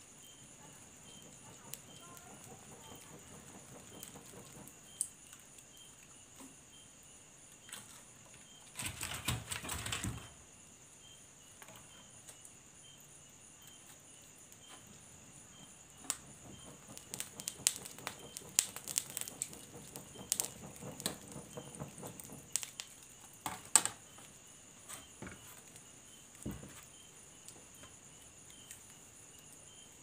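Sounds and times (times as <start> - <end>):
burning wood crackling: 0.2 - 6.8, 13.6 - 30.0.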